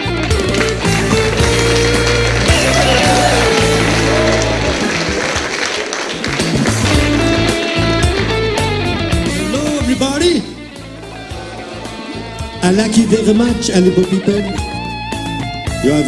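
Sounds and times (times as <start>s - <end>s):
bass guitar: 0.0s - 5.4s, 6.2s - 16.0s
electric guitar melody: 0.0s - 5.4s, 6.2s - 16.0s
drums: 0.0s - 16.0s.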